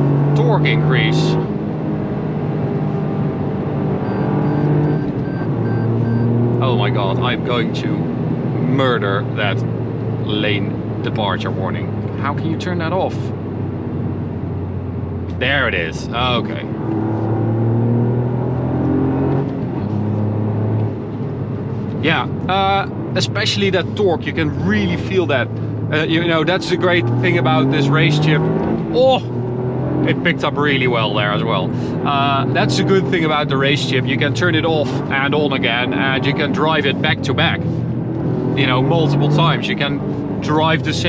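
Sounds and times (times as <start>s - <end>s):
car engine accelerating: 0.0s - 41.0s
rapid electronic warning beeps: 4.0s - 6.4s.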